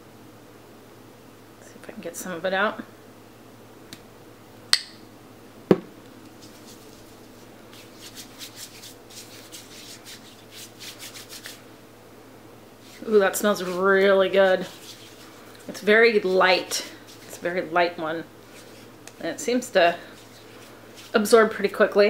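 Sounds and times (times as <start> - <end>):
hands rubbing lotion: 6.3 - 11.7, 12.8 - 17.8, 18.4 - 21.6.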